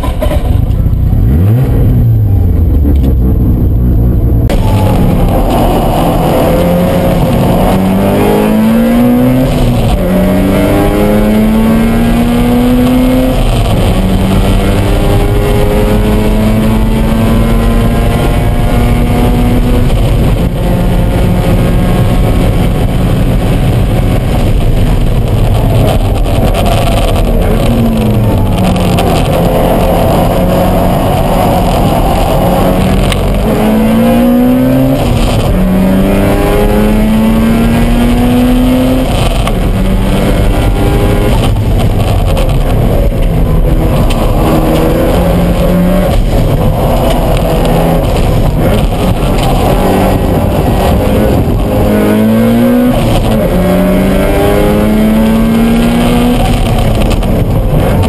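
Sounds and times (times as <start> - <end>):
car engine revving through gears: 0.0 - 58.0.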